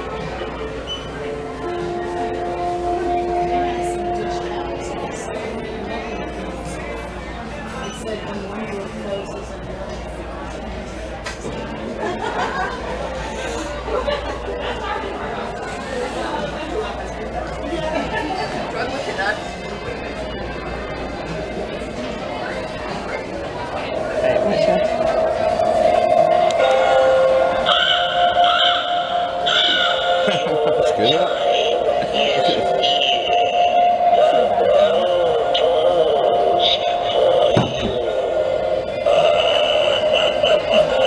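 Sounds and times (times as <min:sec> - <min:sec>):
eerie music: 0:00.0 - 0:07.5, 0:23.3 - 0:41.0
indistinct chatter of voices: 0:00.0 - 0:41.0
warbling voice-like tone: 0:23.1 - 0:41.0.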